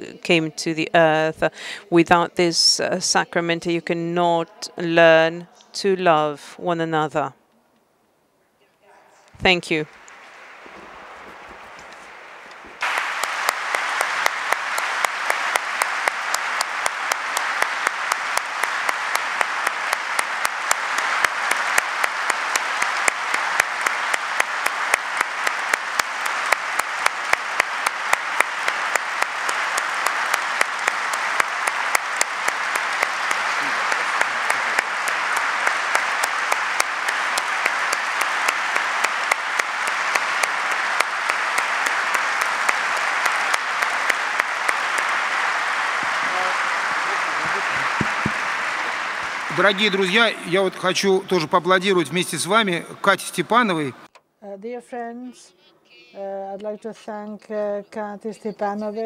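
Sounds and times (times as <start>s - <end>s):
audience applause: 9.4s - 54.1s
sharp single claps close up: 12.6s - 46.7s.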